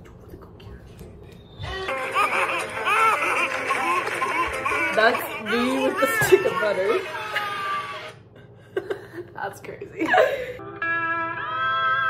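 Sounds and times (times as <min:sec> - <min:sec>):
women laughing: 0:01.8 - 0:09.4, 0:10.0 - 0:10.6.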